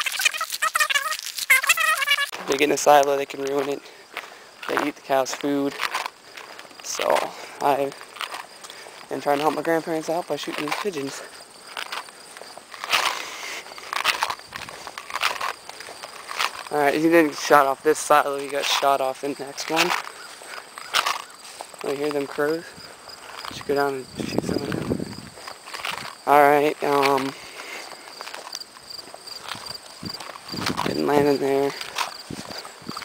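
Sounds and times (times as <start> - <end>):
footsteps on grass and dirt: 0.0 - 33.0
footsteps swishing through grass: 19.8 - 23.7.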